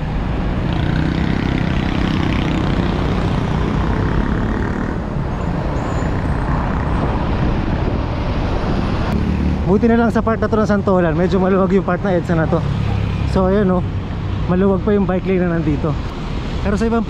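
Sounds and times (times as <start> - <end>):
heavy road traffic: 0.0 - 17.0.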